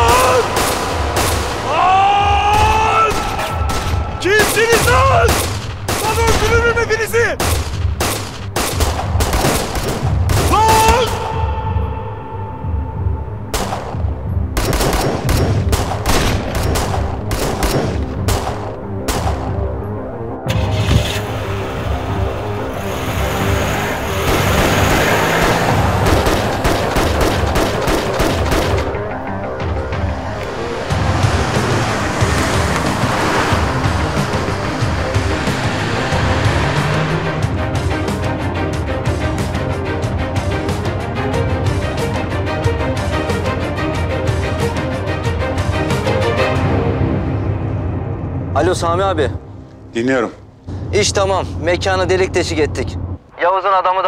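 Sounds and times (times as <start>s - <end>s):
dramatic film score: 0.0s - 54.0s
rapid gunfire: 0.1s - 1.6s, 3.1s - 6.6s, 7.4s - 11.2s, 14.6s - 19.5s, 24.2s - 29.0s.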